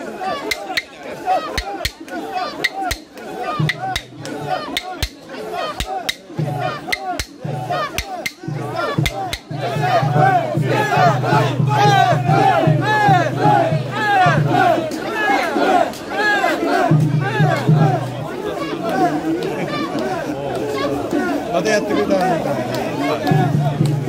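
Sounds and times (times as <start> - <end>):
crowd shouting rhythmic chant: 0.0 - 24.0.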